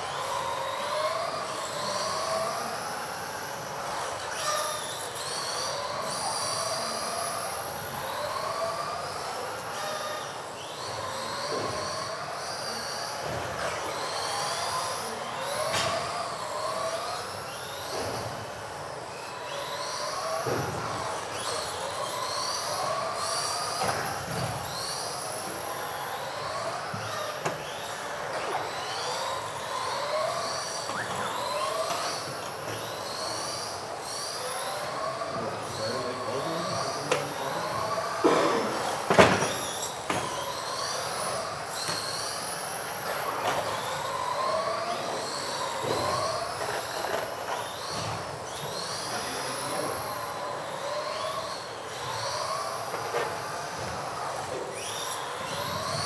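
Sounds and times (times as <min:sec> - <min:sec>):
model car motors whining: 0:00.0 - 0:56.0.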